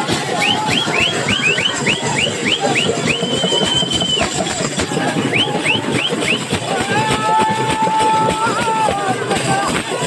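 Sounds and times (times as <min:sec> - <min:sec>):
crowd noise: 0:00.0 - 0:10.0
drum beats: 0:00.0 - 0:10.0
whistle chirps and blast: 0:00.1 - 0:06.6.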